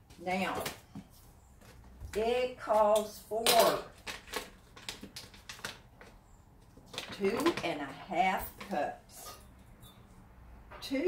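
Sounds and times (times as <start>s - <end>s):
paper bag rustling and tapping: 3.9s - 7.7s.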